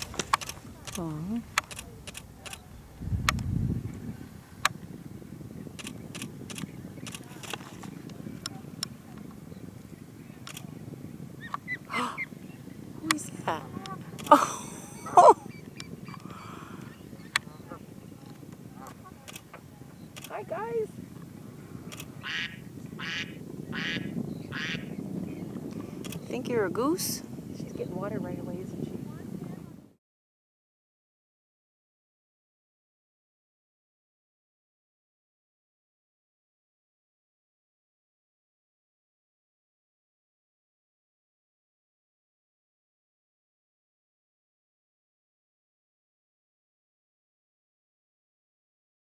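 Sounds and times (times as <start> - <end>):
camera shutter clicks: 0.0 - 2.6, 5.8 - 7.9, 10.4 - 10.7, 19.3 - 19.5, 21.9 - 22.1, 26.0 - 26.2
low rumble: 0.0 - 7.2
bird harsh calls: 22.1 - 25.5.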